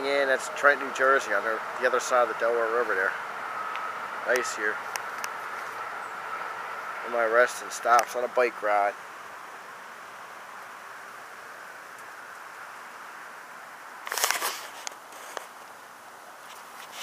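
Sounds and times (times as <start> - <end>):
steady background noise: 0.0 - 17.0
dry leaves and twigs rustling: 14.0 - 15.8, 16.4 - 17.0.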